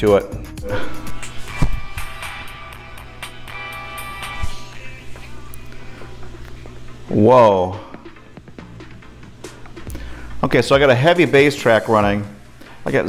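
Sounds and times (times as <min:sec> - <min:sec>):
bass-heavy music from headphones: 0:00.0 - 0:12.9.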